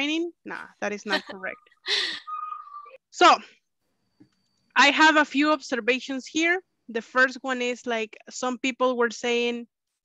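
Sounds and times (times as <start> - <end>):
woman speaking: 0.0 - 3.5, 4.8 - 9.7.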